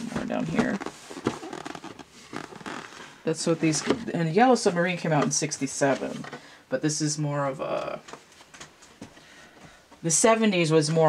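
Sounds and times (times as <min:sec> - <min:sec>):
book pages rustling: 0:00.0 - 0:04.0.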